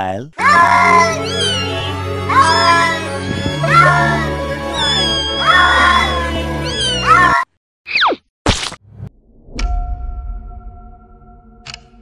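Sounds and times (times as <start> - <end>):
cat meowing: 0.4 - 7.4
musical drone: 0.5 - 7.1.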